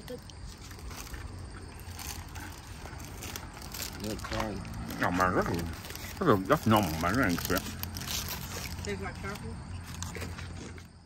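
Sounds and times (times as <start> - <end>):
chewing: 0.0 - 11.0
candy wrapper crinkling: 0.1 - 10.8.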